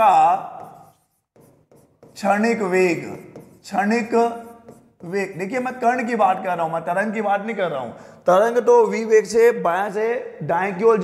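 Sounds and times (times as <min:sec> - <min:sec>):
stylus scratching on glass: 0:00.0 - 0:06.1.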